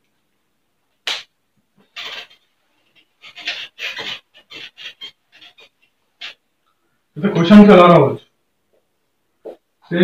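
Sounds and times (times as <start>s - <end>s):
eraser rubbing on whiteboard: 1.8s - 6.4s.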